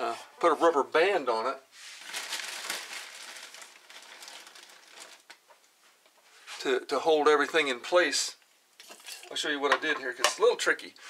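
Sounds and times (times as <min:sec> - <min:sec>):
plastic rustling and clicking: 0:02.0 - 0:06.2.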